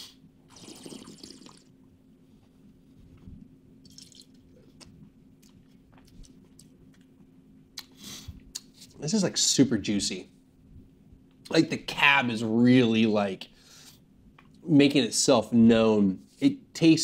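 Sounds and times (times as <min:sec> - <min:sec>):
slurping wine: 0:00.5 - 0:01.7
spitting into metal cup: 0:00.5 - 0:01.7.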